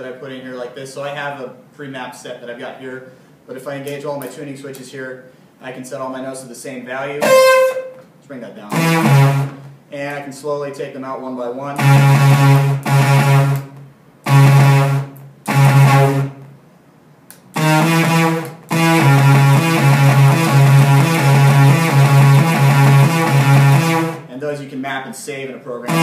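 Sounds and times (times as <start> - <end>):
synthesized instrument notes: 7.2 - 8.0, 8.7 - 9.7, 11.8 - 16.5, 17.5 - 24.3.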